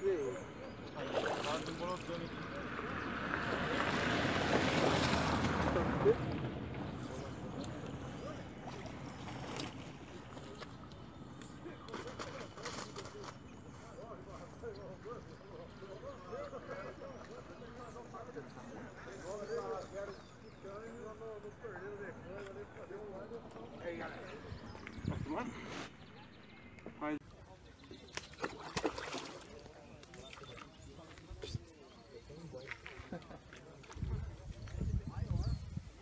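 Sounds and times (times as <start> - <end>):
faint indistinct voices: 0.0 - 36.0
outdoor background noise: 0.0 - 36.0.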